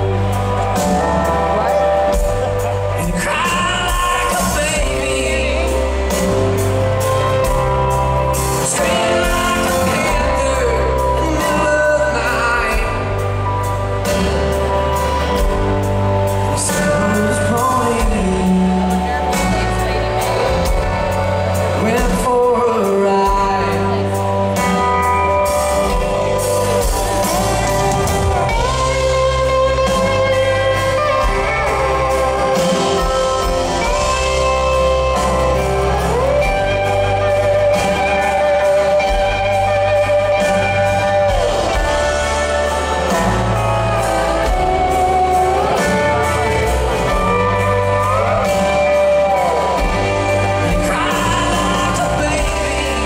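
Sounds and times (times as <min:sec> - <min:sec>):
acoustic guitar: 0:00.0 - 0:53.0
drums: 0:00.0 - 0:53.0
electric guitar: 0:00.0 - 0:53.0
live band playing: 0:00.0 - 0:53.0
pedal steel guitar: 0:00.0 - 0:53.0.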